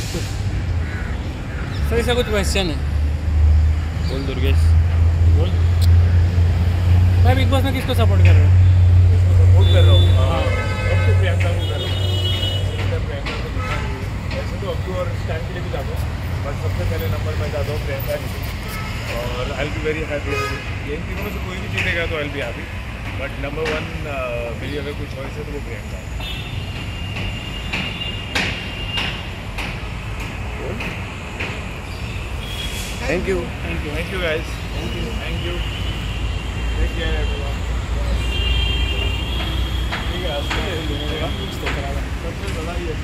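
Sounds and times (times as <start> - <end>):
street traffic rumble: 0.0 - 43.0.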